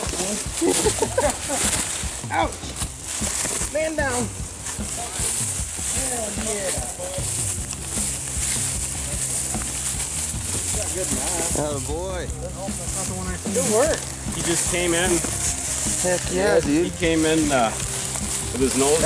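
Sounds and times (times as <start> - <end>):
footsteps through dry grass: 0.0 - 19.0
people exclaiming: 0.4 - 2.7.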